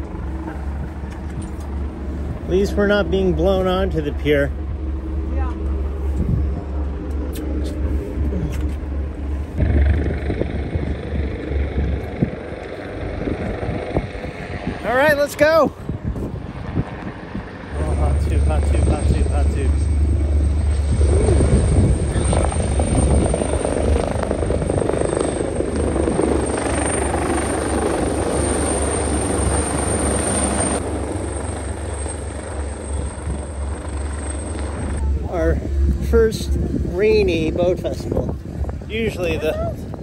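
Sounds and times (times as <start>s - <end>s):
helicopter rotor beating: 0.0s - 40.0s.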